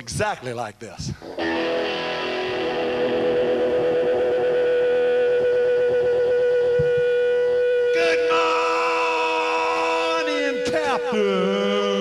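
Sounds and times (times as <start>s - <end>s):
distorted electric guitar: 1.1s - 12.0s.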